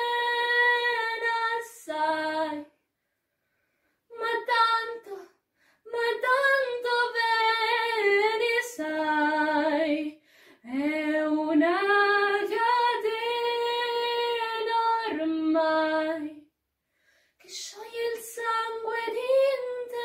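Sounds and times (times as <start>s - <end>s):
girl singing unaccompanied: 0.0s - 2.7s, 4.1s - 5.3s, 5.9s - 16.4s, 17.4s - 20.0s
short breaths: 5.4s - 5.8s, 10.2s - 10.6s, 16.8s - 17.4s.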